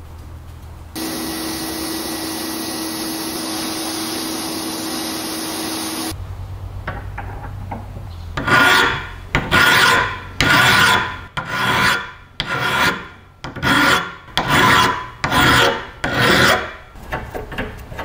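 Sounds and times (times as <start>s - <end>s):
file rasping strokes: 8.4s - 17.2s.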